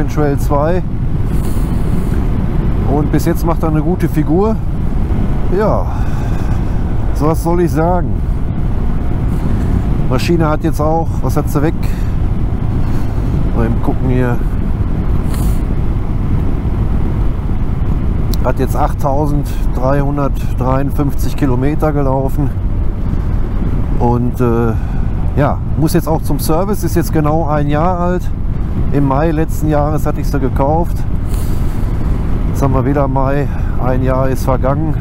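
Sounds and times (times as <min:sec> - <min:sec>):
motorcycle riding: 0:00.0 - 0:35.0
wind and road noise: 0:00.0 - 0:35.0
short hiss: 0:01.3 - 0:02.3, 0:15.2 - 0:15.7.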